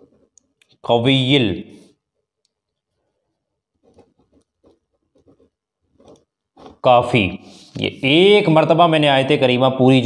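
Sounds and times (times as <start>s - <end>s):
pen scratching on paper: 0.0s - 0.4s, 2.9s - 6.9s.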